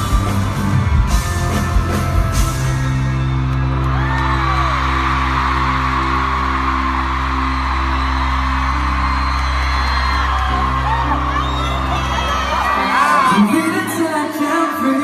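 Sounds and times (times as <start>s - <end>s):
band playing low chords: 0.0s - 14.0s
crowd screaming and cheering: 0.0s - 15.0s.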